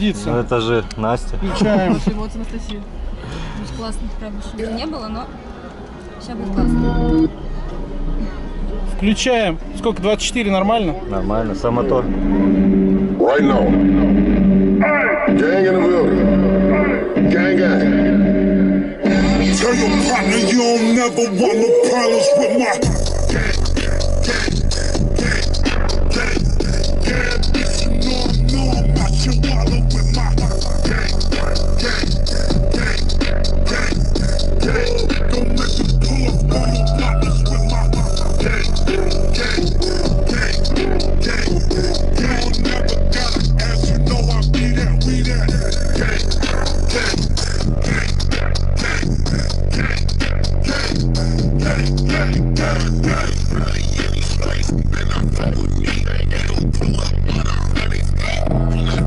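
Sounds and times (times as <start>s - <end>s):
deep bass notes: 6.4s - 20.7s, 22.8s - 59.0s
loud electronic hip-hop music: 12.0s - 59.0s.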